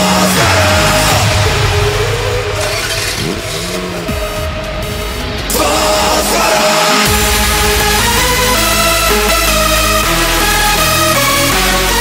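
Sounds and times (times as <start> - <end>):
hard electronic dance music: 0.0 - 12.0.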